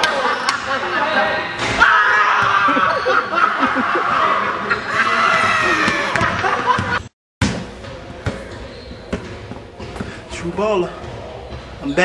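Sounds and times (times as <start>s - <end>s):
people laughing and hollering: 0.0s - 7.0s.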